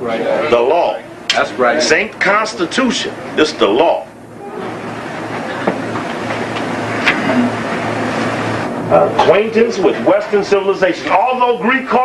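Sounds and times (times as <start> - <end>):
cooling fan whirring: 0.0 - 12.0
low mains hum: 0.0 - 12.0.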